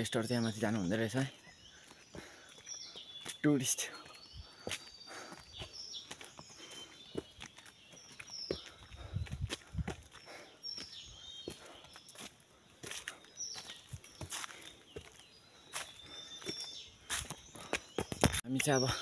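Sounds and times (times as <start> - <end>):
footsteps on woodland path: 0.0 - 19.0.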